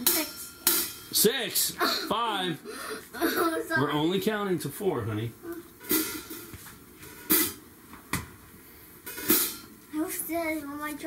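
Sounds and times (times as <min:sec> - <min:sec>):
drumstick strikes on drum kit: 0:07.3 - 0:08.3.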